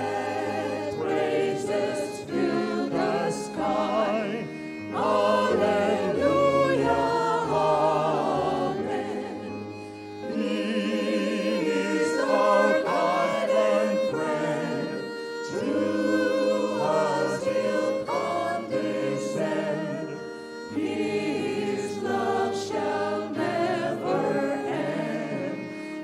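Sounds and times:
violin accompaniment: 0:00.0 - 0:26.0
vocal ensemble singing a hymn: 0:00.0 - 0:26.0
singers breathing: 0:09.6 - 0:10.2.

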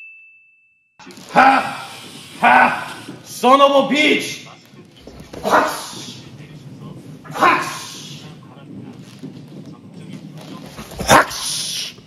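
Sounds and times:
man's forceful exhalations: 0:01.3 - 0:03.2.

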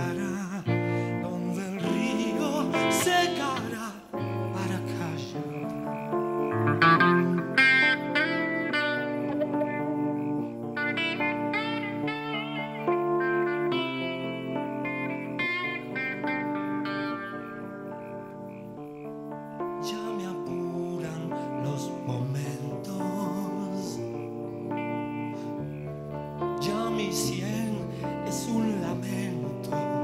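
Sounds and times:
electric guitar played fingerstyle: 0:00.0 - 0:30.0.

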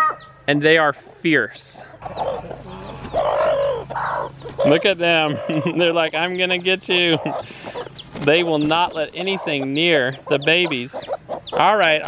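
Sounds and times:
hens clucking and calling: 0:00.0 - 0:12.0.

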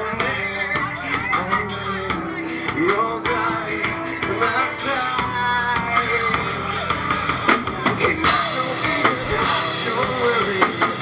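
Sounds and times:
drum kit: 0:00.0 - 0:11.0
electric guitar: 0:00.0 - 0:11.0
rock band playing: 0:00.0 - 0:11.0.

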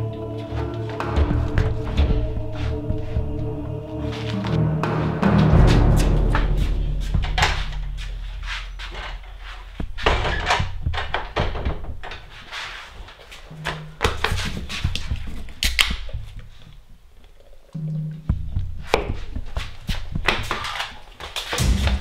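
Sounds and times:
deep music note: 0:00.0 - 0:09.9
thuds and knocks of handling: 0:06.4 - 0:12.3.

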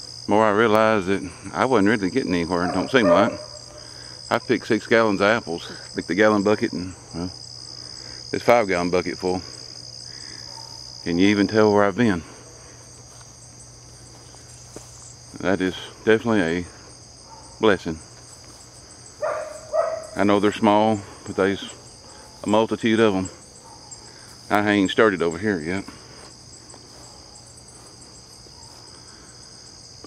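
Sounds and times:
insects chirping: 0:00.0 - 0:30.0.

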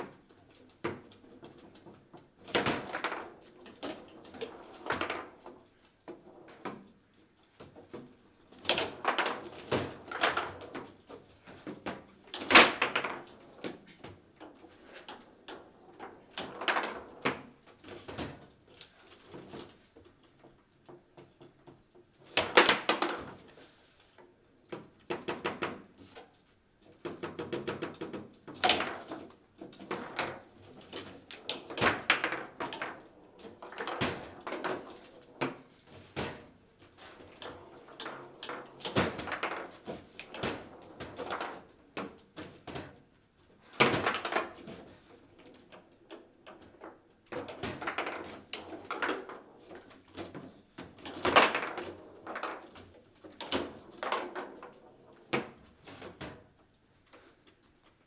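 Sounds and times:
foosball clacks and knocks: 0:00.0 - 0:23.5, 0:24.7 - 0:56.6.

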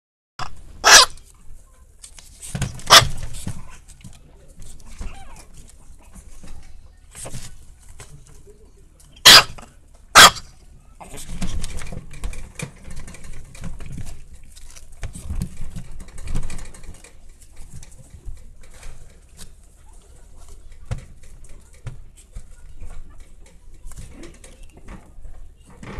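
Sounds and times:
puppy yipping: 0:00.8 - 0:01.1, 0:02.9 - 0:03.2, 0:05.0 - 0:05.5, 0:09.2 - 0:09.5, 0:10.2 - 0:10.4.

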